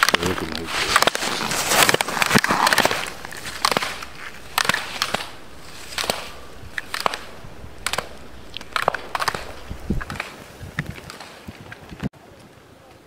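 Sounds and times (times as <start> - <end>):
skis scraping on snow: 0.0 - 11.4.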